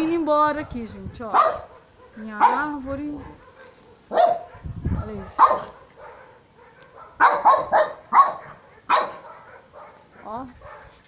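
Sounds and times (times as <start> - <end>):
dog barking: 0.0 - 11.0.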